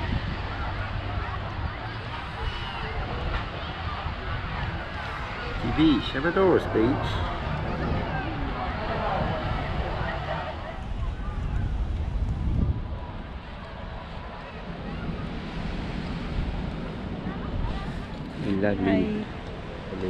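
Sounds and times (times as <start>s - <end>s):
distant crowd chatter: 0.0s - 20.0s
wind rumbling on microphone: 0.0s - 20.0s.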